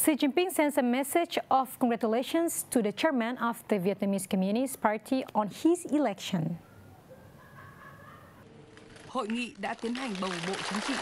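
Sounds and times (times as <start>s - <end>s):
group applauding: 8.9s - 11.0s.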